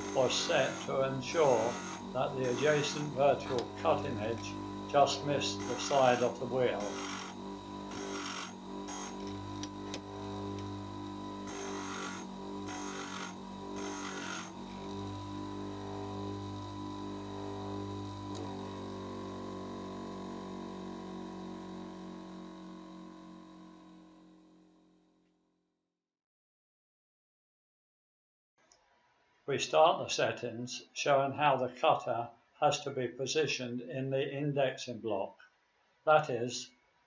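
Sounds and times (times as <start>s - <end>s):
metal grinding bursts: 0.0s - 10.6s, 11.2s - 15.0s
bench grinder motor hum: 0.0s - 25.1s.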